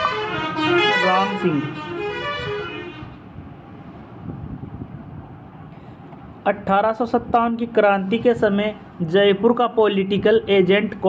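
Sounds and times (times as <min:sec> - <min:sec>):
vehicle horn: 0:00.0 - 0:03.2
low rumble of traffic: 0:00.0 - 0:11.0.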